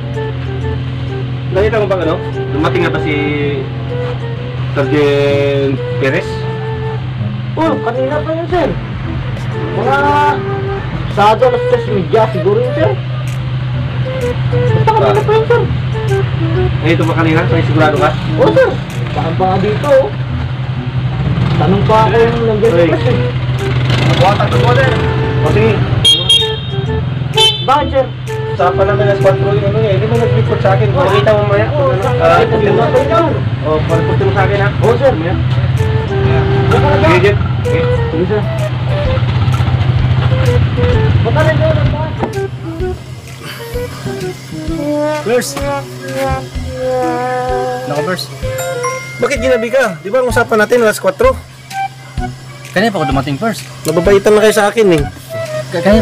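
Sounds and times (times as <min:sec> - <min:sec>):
melody of held notes: 0:00.0 - 0:18.9, 0:48.5 - 0:52.6
background music: 0:00.0 - 0:56.0.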